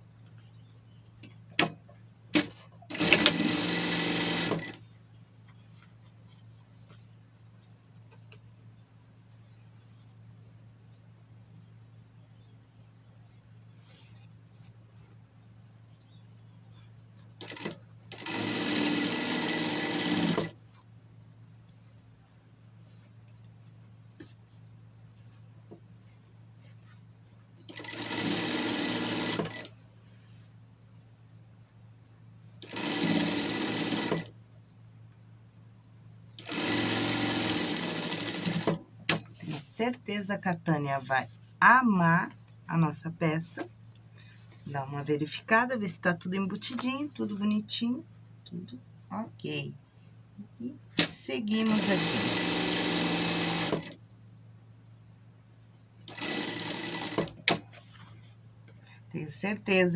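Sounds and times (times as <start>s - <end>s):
low steady hum: 0.0s - 52.4s
sewing machine stitching: 2.4s - 4.8s, 17.4s - 20.6s, 27.7s - 29.7s, 32.6s - 34.3s, 36.4s - 39.6s, 51.0s - 54.0s, 56.1s - 57.7s.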